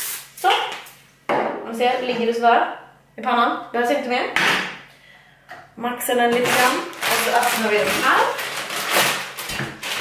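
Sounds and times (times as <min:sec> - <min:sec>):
plastic packaging crinkling: 0:06.4 - 0:10.0.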